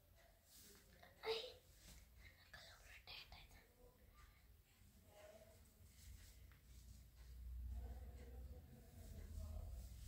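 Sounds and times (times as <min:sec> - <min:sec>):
faint whispering: 0:00.6 - 0:06.5.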